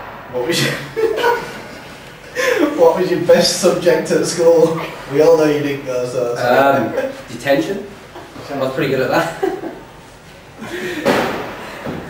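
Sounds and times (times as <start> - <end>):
man speaking: 0.3 - 1.5, 2.4 - 9.4
young man chuckling: 0.6 - 2.9.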